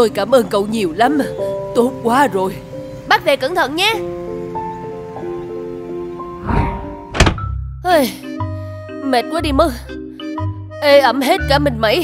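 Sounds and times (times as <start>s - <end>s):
background music: 0.0s - 12.0s
rising whoosh: 6.3s - 7.5s
heavy thunk: 6.4s - 7.6s.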